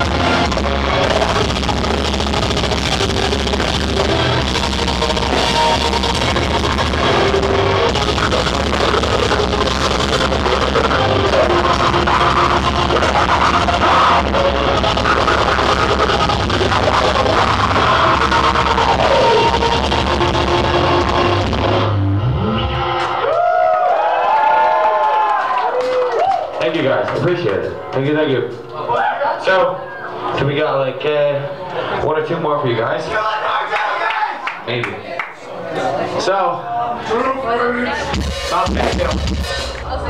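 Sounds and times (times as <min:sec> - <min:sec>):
metal band playing live: 0:00.0 - 0:23.2, 0:38.1 - 0:40.0
crowd shouting: 0:00.0 - 0:26.6, 0:33.1 - 0:34.5
screamed vocals: 0:10.4 - 0:19.8.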